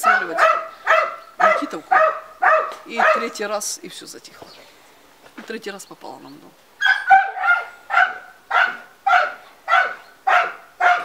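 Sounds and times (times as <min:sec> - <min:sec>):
dog barking: 0:00.0 - 0:03.4, 0:06.8 - 0:11.0.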